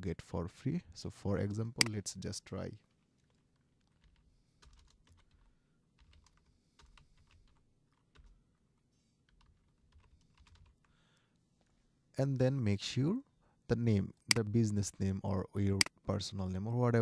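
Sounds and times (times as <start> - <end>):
faint computer keyboard typing: 2.7 - 11.8.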